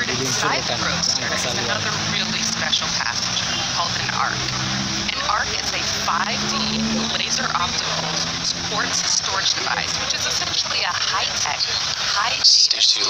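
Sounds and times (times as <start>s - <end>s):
indistinct voices talking: 0.0s - 13.0s
steady rushing noise: 0.0s - 13.0s.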